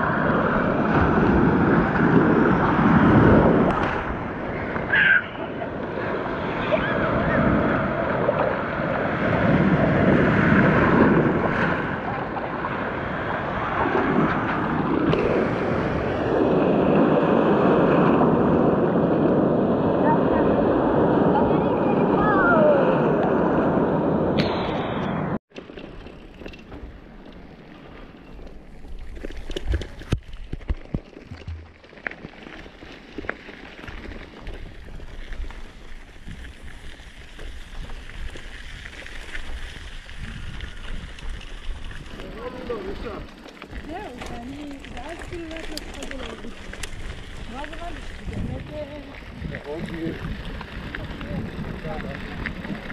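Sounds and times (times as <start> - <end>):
bicycle rolling over dirt: 0.0 - 20.2, 25.5 - 52.9
surf breaking and sloshing: 0.0 - 25.7, 32.6 - 52.9
rattles and clicks: 25.5 - 34.5.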